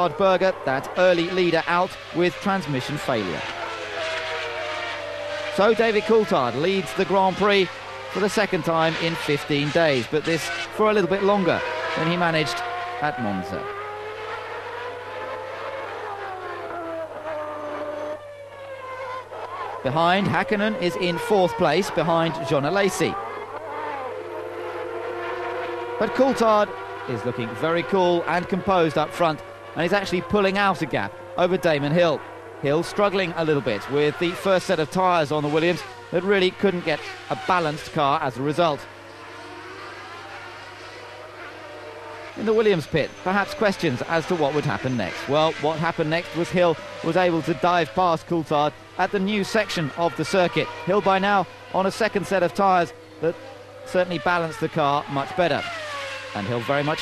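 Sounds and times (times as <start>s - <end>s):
race car engine at high revs: 0.0s - 57.0s.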